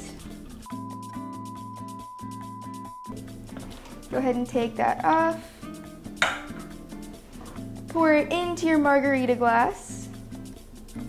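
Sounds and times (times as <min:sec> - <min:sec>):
quiet background music: 0:00.0 - 0:11.0
glass clacking on glass tabletop: 0:06.2 - 0:06.6.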